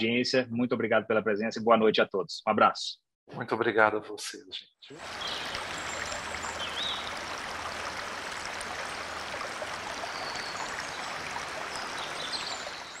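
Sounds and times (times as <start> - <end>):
stream flowing: 5.0 - 13.0.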